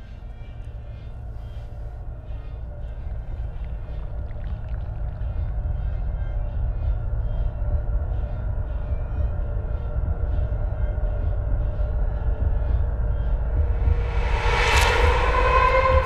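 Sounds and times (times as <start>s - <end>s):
deep rumbling drone: 0.0s - 16.0s
rising whoosh: 13.5s - 16.0s.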